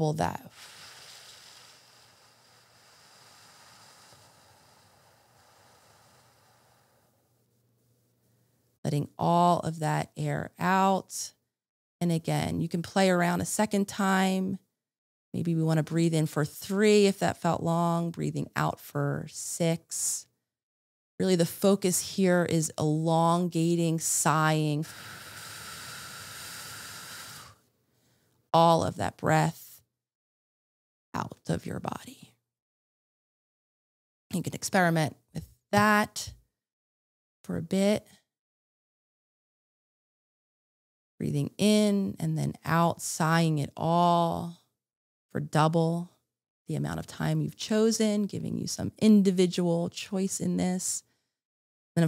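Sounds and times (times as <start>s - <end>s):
slow breathy exhale: 0.5s - 7.5s, 24.8s - 28.3s.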